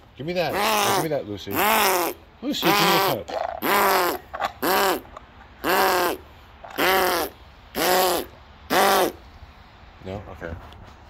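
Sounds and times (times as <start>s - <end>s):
animal caw-like calls: 0.5s - 9.2s.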